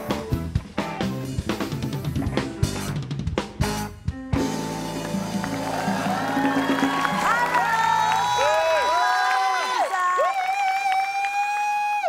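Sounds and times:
band theme music: 0.0s - 9.1s
studio audience cheering: 4.8s - 12.0s.

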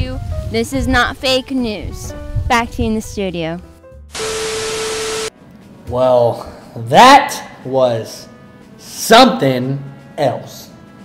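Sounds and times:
static hiss: 4.2s - 5.3s.

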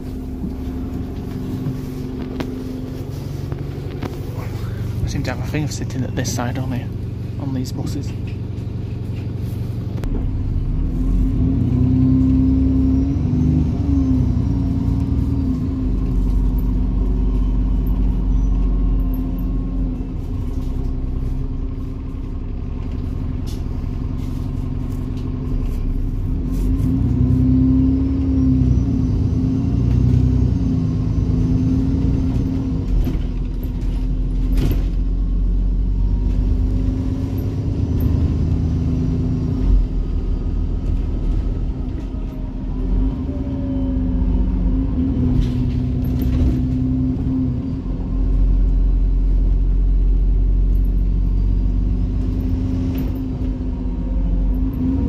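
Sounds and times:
bus diesel engine accelerating: 0.0s - 55.0s.

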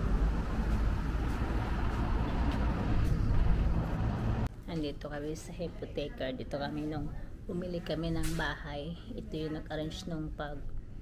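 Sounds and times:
road traffic rumble: 0.0s - 4.5s.

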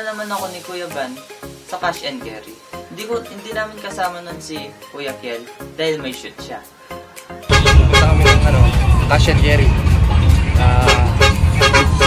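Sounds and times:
background music: 0.0s - 12.0s
bus engine and road rumble: 7.5s - 12.0s.

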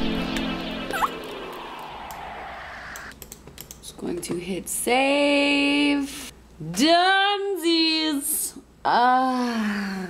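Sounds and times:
laptop keyboard typing: 3.1s - 3.8s.

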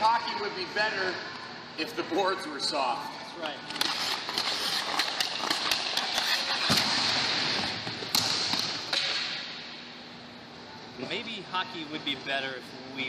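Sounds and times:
stick and puck clicks: 3.7s - 7.0s.

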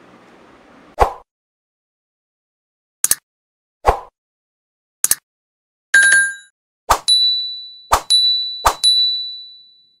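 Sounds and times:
bright chime: 7.1s - 10.0s
high bell-like ding: 7.1s - 10.0s.

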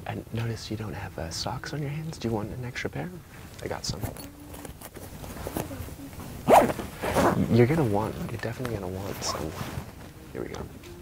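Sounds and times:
rummaging in a backpack: 3.8s - 10.8s
zipper zip: 4.5s - 7.8s.

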